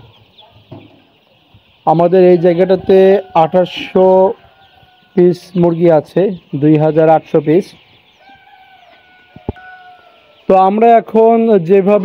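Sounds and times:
man speaking: 5.2s - 7.8s, 10.5s - 12.0s.

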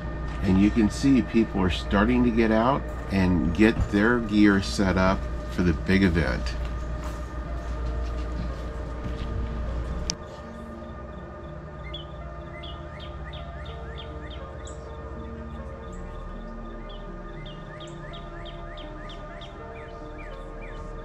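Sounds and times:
music of long held notes: 0.0s - 21.0s
high bird-like chirps: 15.9s - 20.9s.

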